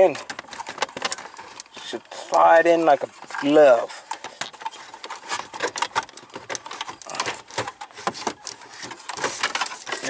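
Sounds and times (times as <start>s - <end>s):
plastic clicks and knocks: 0.0s - 1.8s, 3.3s - 10.0s.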